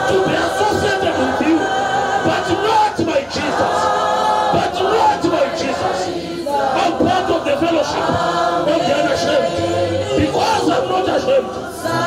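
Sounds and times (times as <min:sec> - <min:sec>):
crowd singing in unison: 0:00.0 - 0:12.0.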